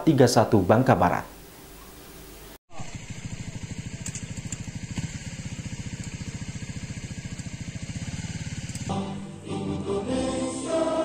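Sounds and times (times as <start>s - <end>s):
small engine idling: 2.7s - 9.4s.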